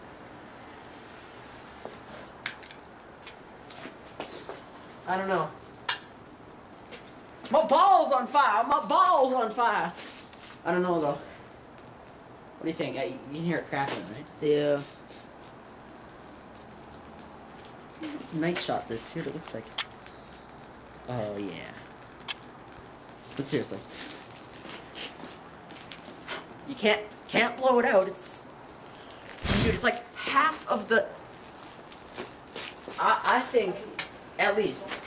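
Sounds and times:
burning ball crackling: 0:00.0 - 0:35.0.

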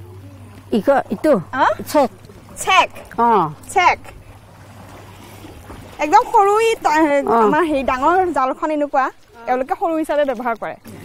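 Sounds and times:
constant low hum: 0:00.0 - 0:11.0.

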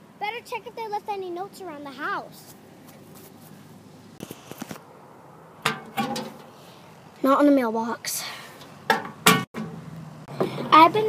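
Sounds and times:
metal mailbox door clanking: 0:05.6 - 0:06.5.

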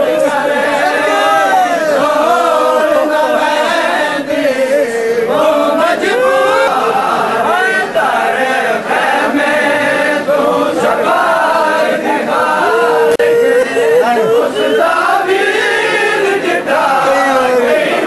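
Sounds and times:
crowd of men chanting a lament: 0:00.0 - 0:18.0.

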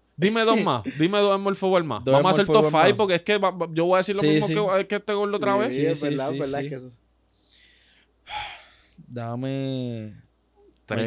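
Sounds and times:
person breathing in: 0:07.4 - 0:09.0
breathy gasp: 0:07.5 - 0:09.0.

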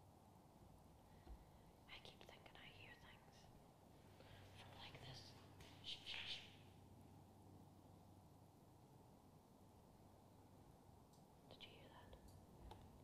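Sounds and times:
faint whispering: 0:01.8 - 0:03.6, 0:04.2 - 0:06.6, 0:11.5 - 0:12.3.

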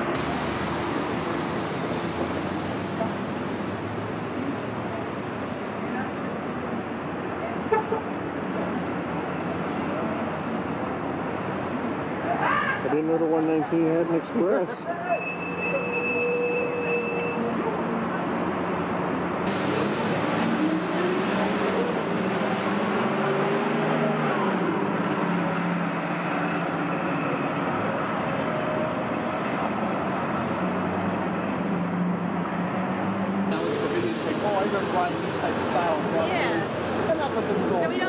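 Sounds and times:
bus diesel engine passing: 0:00.0 - 0:38.0
street traffic noise: 0:00.0 - 0:38.0.

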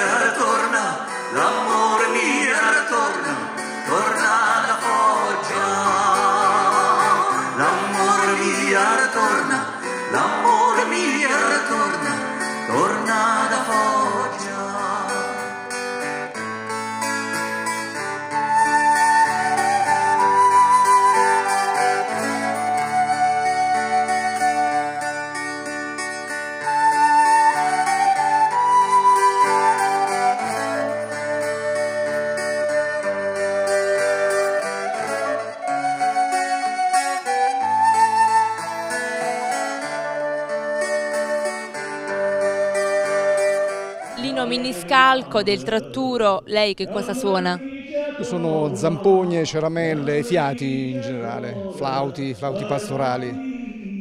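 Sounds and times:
acoustic guitar chords: 0:00.0 - 0:50.7
wooden pipe melody: 0:04.0 - 0:12.9, 0:15.3 - 0:44.9.

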